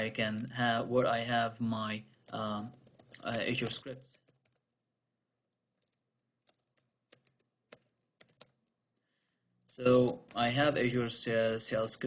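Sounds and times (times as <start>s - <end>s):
computer keyboard keystrokes: 2.3s - 4.7s, 5.8s - 8.7s.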